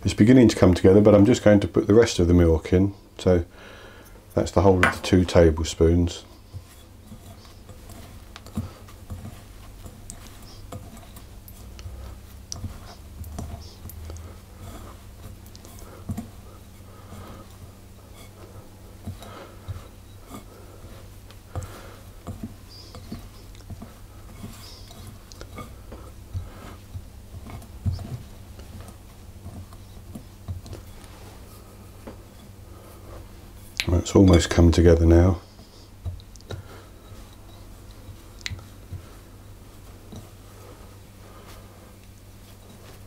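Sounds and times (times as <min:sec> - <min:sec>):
faint low hum: 0:00.0 - 0:43.0
hands rubbing dough: 0:04.1 - 0:43.0.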